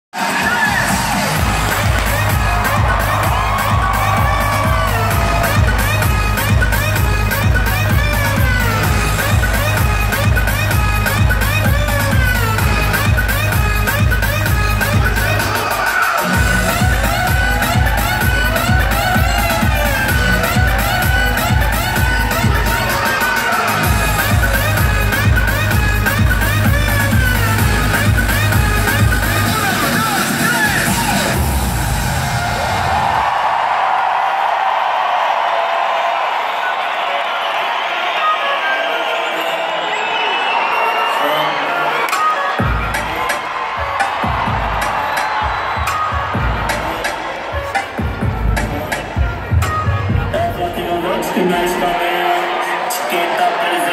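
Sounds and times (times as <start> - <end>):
crowd cheering: 0.1 - 53.9
electronic dance music: 0.1 - 53.9.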